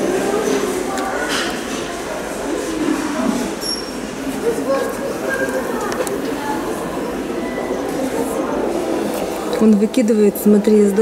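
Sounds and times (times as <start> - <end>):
indistinct distant voices: 0.0 - 11.0
room noise: 0.0 - 11.0.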